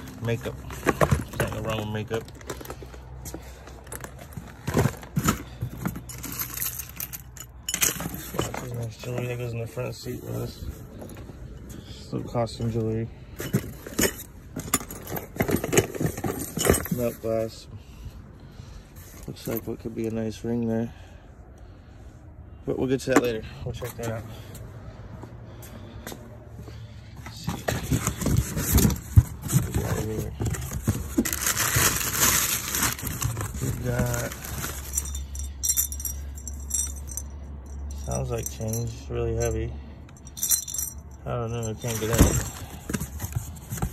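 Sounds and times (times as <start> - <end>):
small metal items jangling: 0.0 - 9.6, 10.3 - 17.6, 27.3 - 43.9
metal contents jingling in container: 0.0 - 17.6, 27.3 - 43.9.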